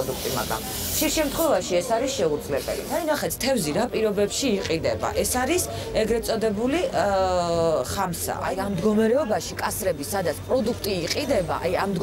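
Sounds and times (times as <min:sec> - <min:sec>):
steady high hiss: 0:00.0 - 0:03.3
woman speaking: 0:00.0 - 0:12.0.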